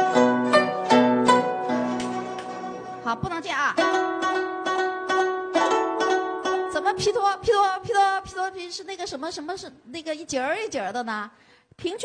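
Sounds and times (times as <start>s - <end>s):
zither plucked in rapid runs: 0.0s - 7.4s.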